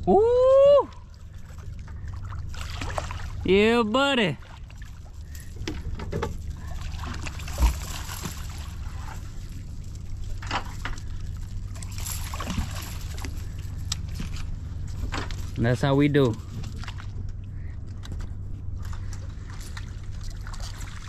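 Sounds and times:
steady low hum: 0.0 - 21.0
water sloshing: 0.8 - 21.0
fish splashing and thrashing: 1.0 - 3.5, 4.4 - 15.6, 16.3 - 21.0.

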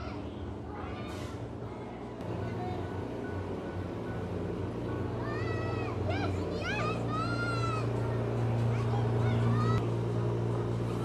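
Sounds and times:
hum of indoor play hall: 0.0 - 11.0.

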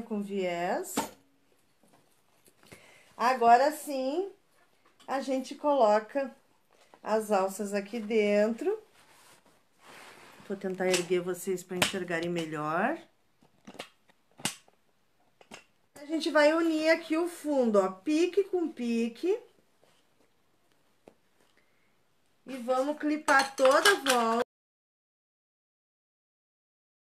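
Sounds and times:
fabric rustling: 7.9 - 11.0.

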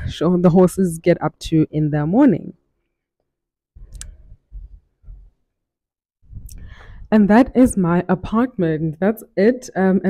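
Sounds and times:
microphone handling noise: 3.8 - 5.3
person speaking: 6.4 - 10.0.

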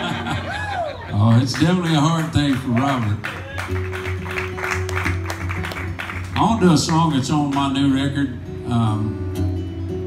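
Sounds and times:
acoustic guitar played lightly: 1.1 - 10.0.

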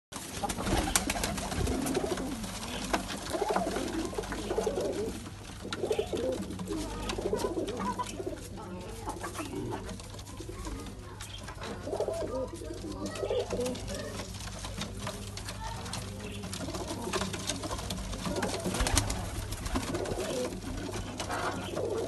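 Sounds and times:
pigeons cooing: 0.2 - 22.0.

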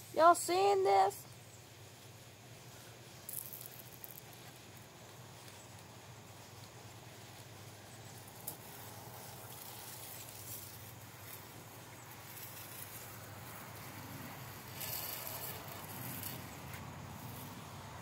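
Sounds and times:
faint outdoor background noise: 0.0 - 18.0.

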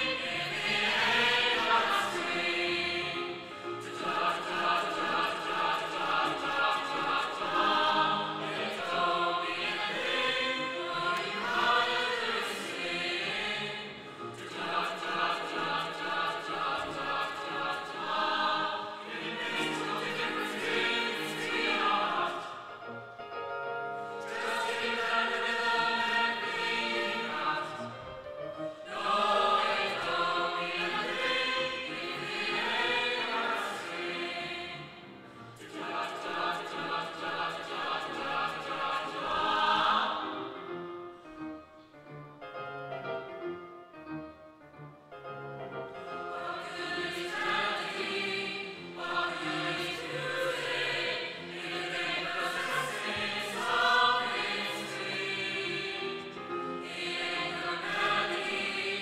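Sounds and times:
children's choir singing: 0.0 - 22.9, 24.0 - 40.7, 46.1 - 59.0.

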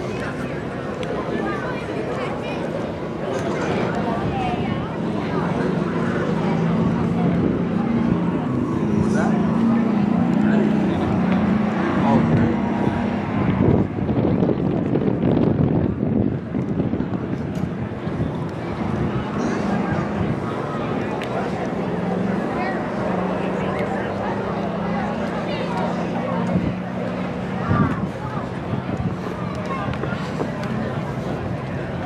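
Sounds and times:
rough car engine running: 0.0 - 32.0.

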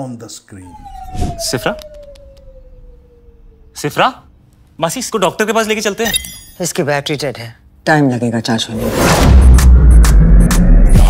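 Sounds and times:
high ringing tones: 6.0 - 6.7.

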